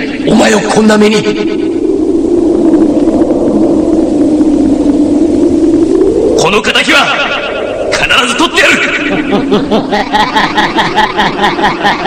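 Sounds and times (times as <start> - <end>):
loud steady low drone: 0.0 - 12.0.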